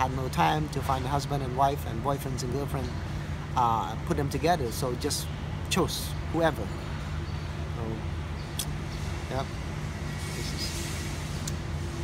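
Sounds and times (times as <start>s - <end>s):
distant road traffic rumble: 0.0s - 12.0s.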